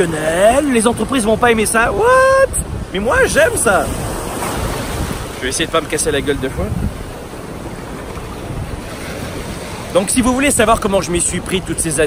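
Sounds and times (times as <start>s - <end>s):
ocean surf washing: 0.0s - 12.0s
wind buffeting microphone: 0.0s - 12.0s.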